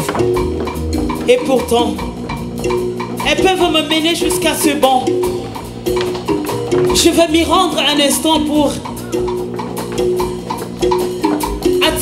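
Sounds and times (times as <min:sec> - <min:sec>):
light drum and percussion: 0:00.0 - 0:12.0.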